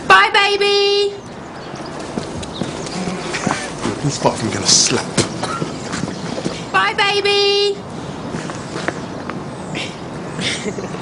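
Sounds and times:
footsteps on pavement: 1.7s - 9.5s.

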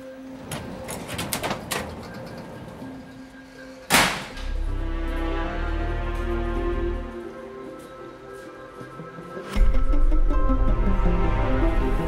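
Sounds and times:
faint background music: 0.0s - 12.0s
low sustained music chords: 0.0s - 12.0s.

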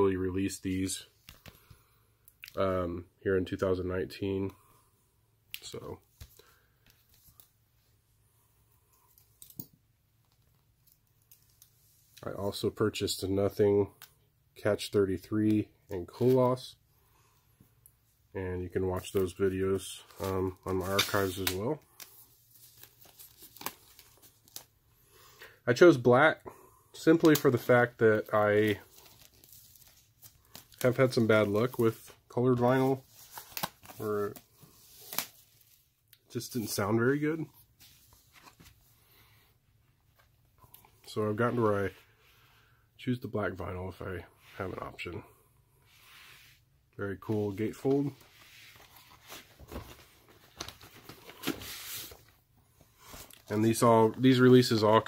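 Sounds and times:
paper and cardboard rustling: 19.0s - 24.7s, 27.0s - 35.9s, 47.2s - 52.4s
plastic shrink-wrap tearing and crinkling: 33.2s - 35.4s.

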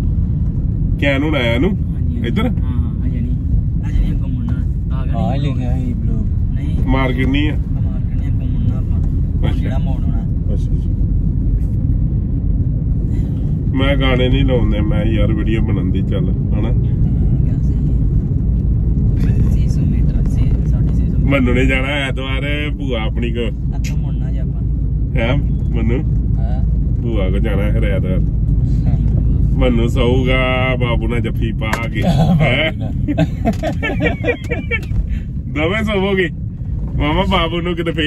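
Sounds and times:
car driving rumble from inside: 0.0s - 38.0s.

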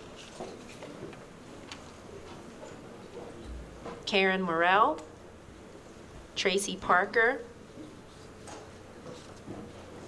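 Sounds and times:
faint clicks and rustles: 0.0s - 4.1s, 7.7s - 10.0s.

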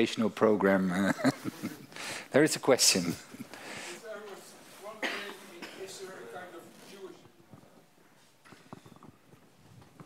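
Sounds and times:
person coughing: 4.9s - 6.0s.

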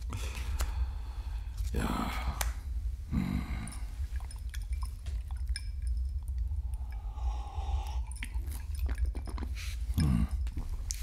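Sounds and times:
sipping and swallowing: 3.4s - 11.0s
low drone: 6.3s - 8.5s
wet mouth clicks: 7.8s - 11.0s.

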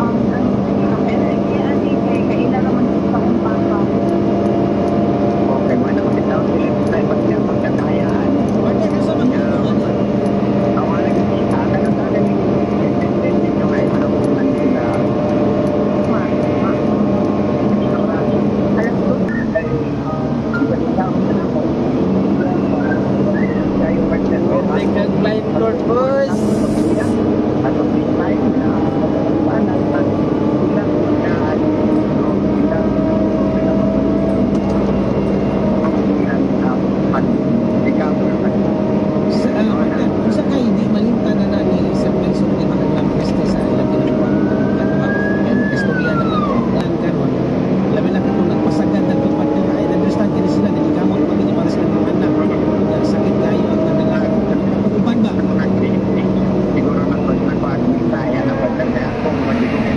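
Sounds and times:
diesel engine running: 0.0s - 59.9s.

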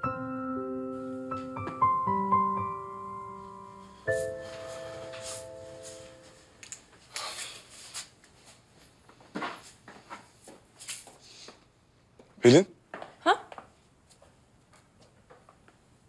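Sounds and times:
soft piano chord: 0.0s - 6.5s
faint rustling and handling: 4.0s - 11.7s.

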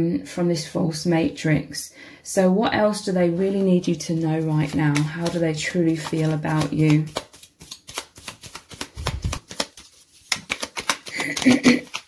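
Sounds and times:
cards being shuffled: 4.1s - 12.0s.

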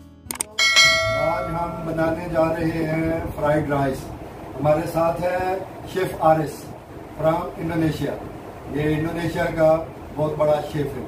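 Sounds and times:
bright bell ding: 0.5s - 2.4s.

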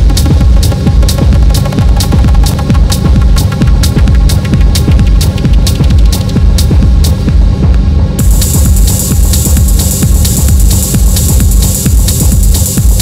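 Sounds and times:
crisp hi-hat: 0.0s - 13.0s
driving bass pulse: 0.0s - 13.0s
techno music: 0.0s - 13.0s.

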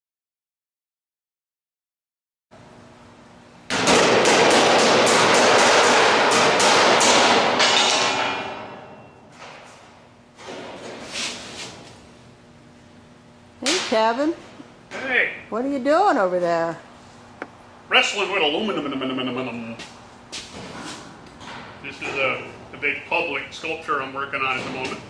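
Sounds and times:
aluminum sheet rattling and banging: 3.7s - 11.8s.

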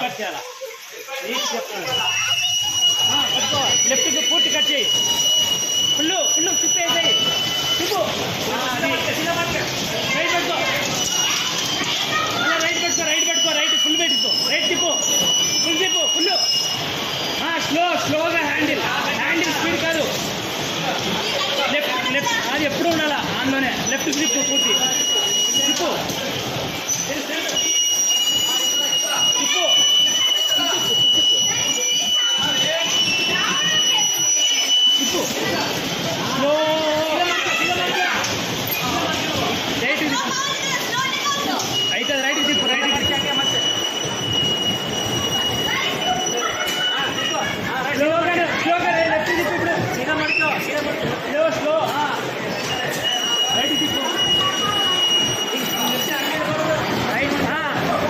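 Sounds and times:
voices: 0.0s - 58.0s
children calling out: 0.3s - 17.0s, 24.0s - 51.2s, 52.0s - 58.0s
bumper cars rolling: 3.7s - 58.0s.

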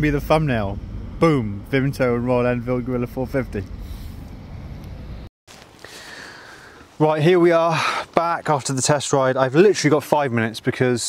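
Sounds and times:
low outdoor background rumble: 0.0s - 5.3s.

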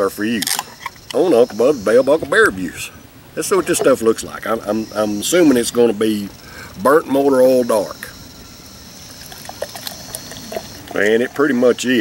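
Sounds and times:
beer pouring into a glass: 9.1s - 11.8s.

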